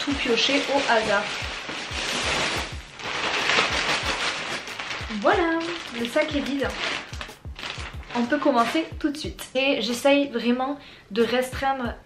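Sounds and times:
wrapped clothes sliding: 0:00.0 - 0:08.9
plastic bag crinkling: 0:00.0 - 0:09.2.

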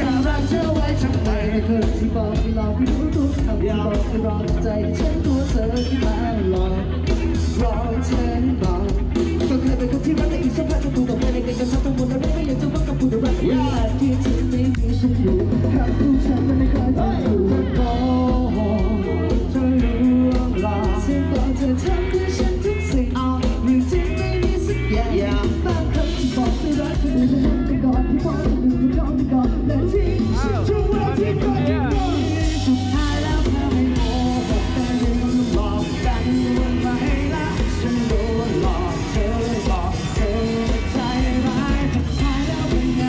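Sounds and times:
live rock band playing: 0:00.0 - 0:43.0
person singing: 0:00.0 - 0:43.0.

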